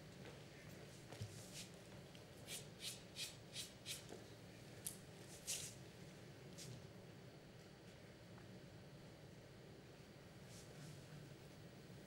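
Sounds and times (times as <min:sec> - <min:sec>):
chalk scratching on cue tip: 0:02.5 - 0:04.1.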